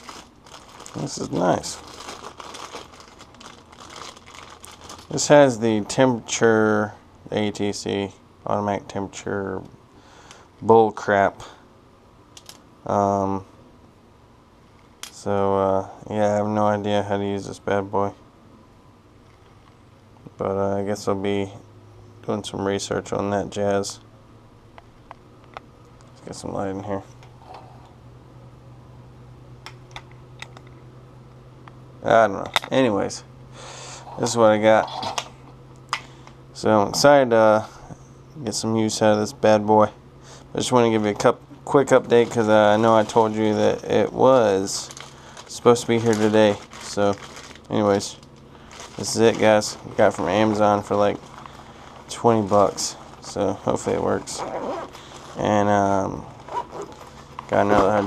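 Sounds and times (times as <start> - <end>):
plastic bag crinkling: 0.0 - 5.5, 41.9 - 58.0
steady low hum: 0.0 - 58.0.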